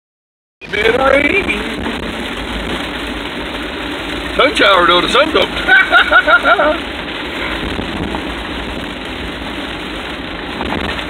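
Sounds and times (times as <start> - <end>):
rain hitting windshield: 0.6 - 11.0
vehicle engine and road noise: 0.6 - 11.0.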